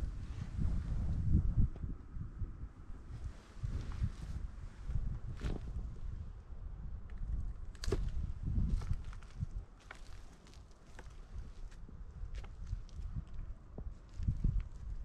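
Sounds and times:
wind rumble on microphone: 0:00.0 - 0:15.0.

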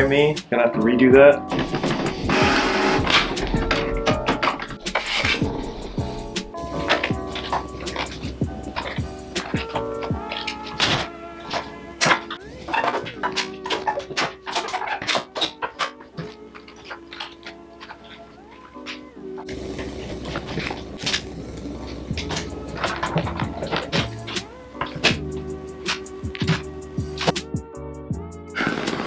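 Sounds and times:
mellow instrumental music: 0:00.0 - 0:29.0
deep bass: 0:01.3 - 0:10.3.

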